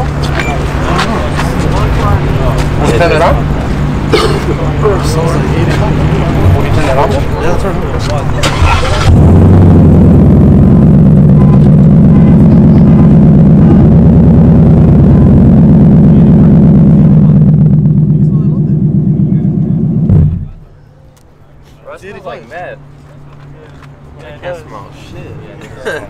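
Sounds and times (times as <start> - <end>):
car engine idling loudly: 0.0 - 20.8.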